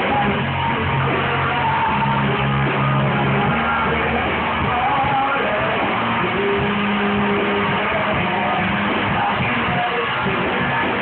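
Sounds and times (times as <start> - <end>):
electric guitars sustained notes: 0.0 - 11.0
rock band playing loudly: 0.0 - 11.0.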